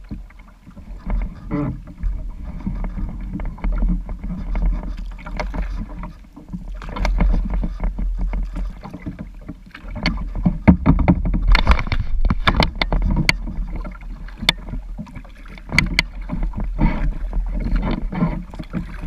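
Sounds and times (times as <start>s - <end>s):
paddle splashing and dripping: 0.0s - 19.0s
water slapping plastic hull: 0.0s - 19.0s.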